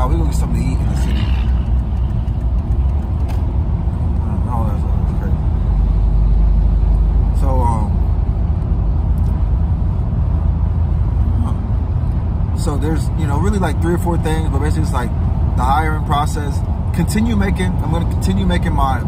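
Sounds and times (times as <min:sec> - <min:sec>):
car cabin road and engine rumble: 0:00.0 - 0:19.0.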